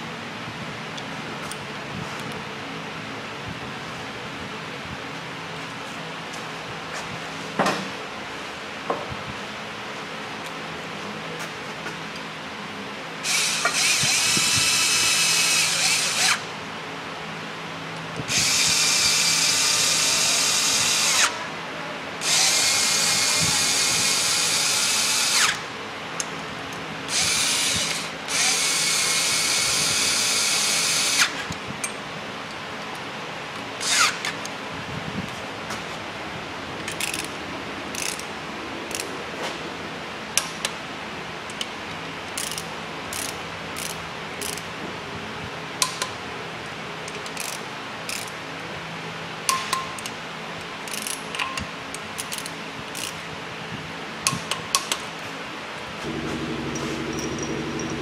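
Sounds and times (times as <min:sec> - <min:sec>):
power ratchet whirring: 0:13.2 - 0:16.5, 0:22.2 - 0:25.7, 0:27.1 - 0:31.4, 0:33.8 - 0:34.4.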